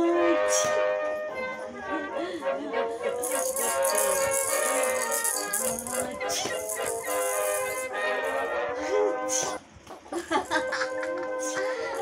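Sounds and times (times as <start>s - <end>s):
background music: 0.0s - 9.7s, 10.3s - 12.0s
toy rattle shaken: 3.1s - 8.5s, 11.5s - 12.0s.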